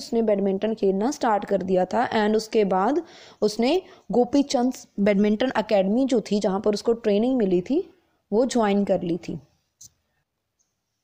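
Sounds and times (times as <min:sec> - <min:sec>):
woman's voice: 0:00.0 - 0:09.5.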